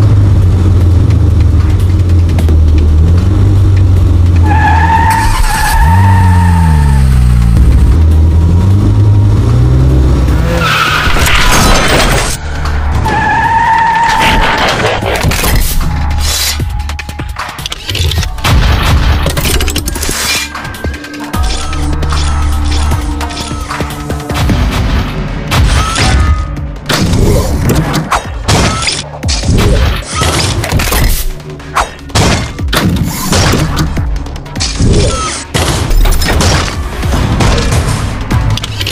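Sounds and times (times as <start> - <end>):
dramatic soundtrack music: 0.0 - 38.9.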